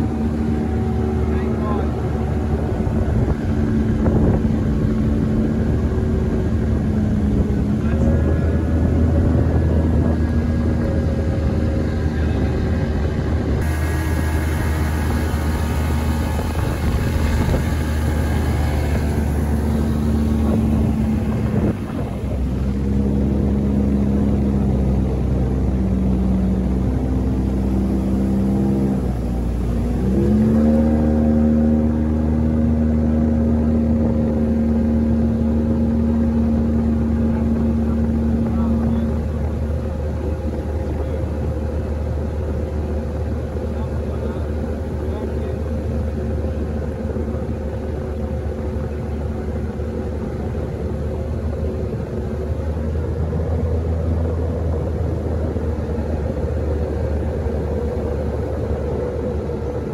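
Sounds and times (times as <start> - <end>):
boat outboard motor running: 0.0 - 59.9.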